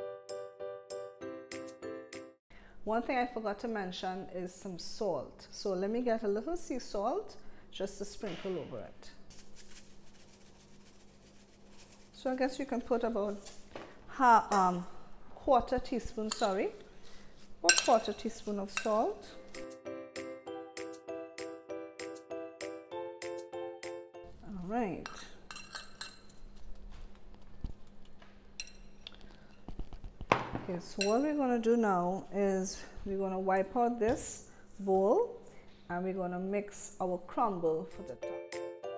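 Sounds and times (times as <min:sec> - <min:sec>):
metal spoon stirring apples: 0:15.7 - 0:19.6
spoon clinking against dish: 0:16.2 - 0:16.6, 0:17.7 - 0:19.1, 0:25.0 - 0:26.4, 0:28.6 - 0:29.2, 0:31.0 - 0:31.3.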